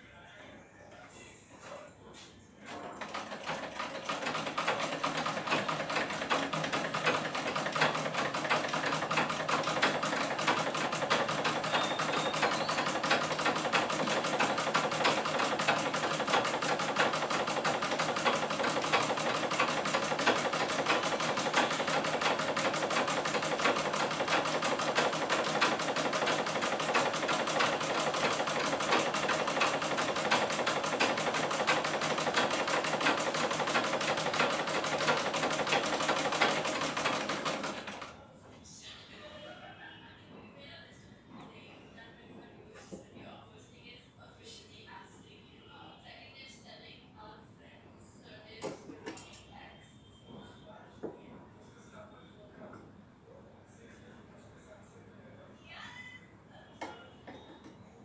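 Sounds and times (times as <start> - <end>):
sewing machine stitching: 2.7 - 38.2.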